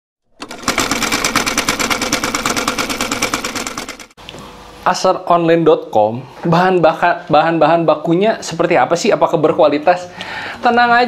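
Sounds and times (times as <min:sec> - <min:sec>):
sewing machine running: 0:00.3 - 0:04.2.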